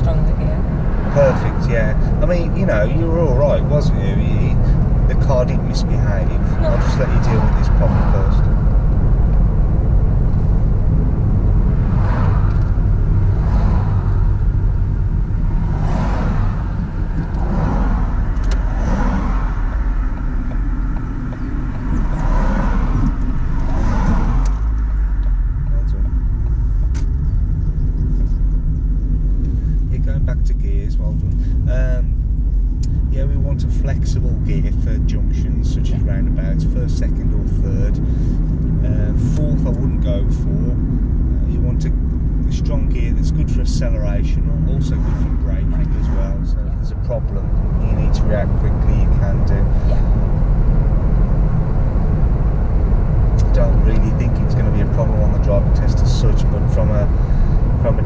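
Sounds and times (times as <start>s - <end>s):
car engine and tyres rumbling: 0.0s - 58.0s
vehicles passing by: 0.0s - 58.0s.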